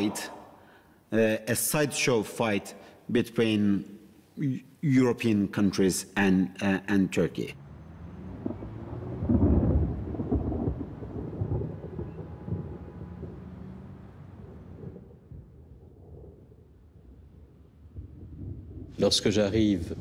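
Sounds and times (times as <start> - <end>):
deep low rumble: 8.0 - 19.0.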